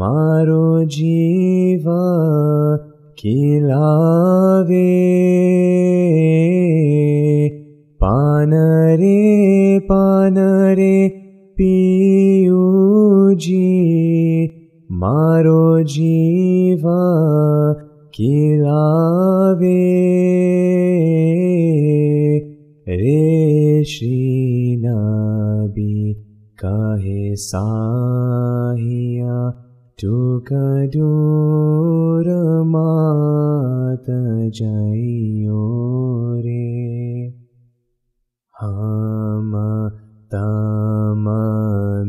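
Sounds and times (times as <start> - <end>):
man singing unaccompanied: 0.0 - 37.4, 38.5 - 42.0
man chanting unaccompanied: 38.6 - 42.0.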